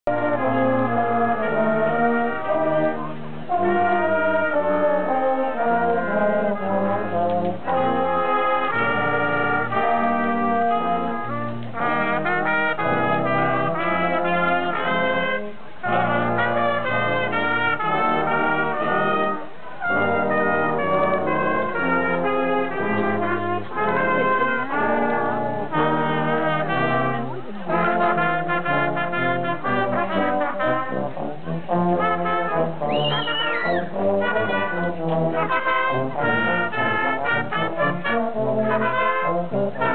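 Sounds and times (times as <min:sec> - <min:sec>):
brass band playing: 0:00.0 - 0:39.9.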